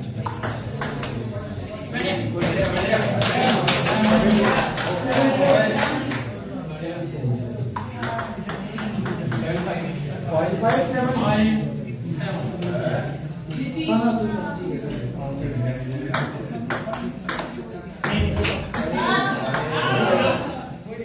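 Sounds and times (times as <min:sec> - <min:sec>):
spectators' voices: 0:00.0 - 0:21.0
table tennis ball clicking: 0:00.2 - 0:01.2, 0:07.8 - 0:09.8.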